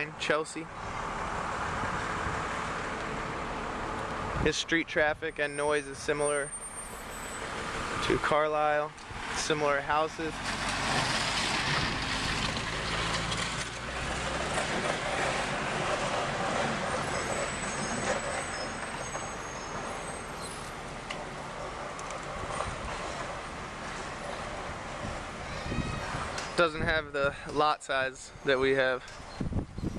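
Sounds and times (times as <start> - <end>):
truck engine humming: 0.0 - 26.8
street noise hiss: 0.0 - 29.9.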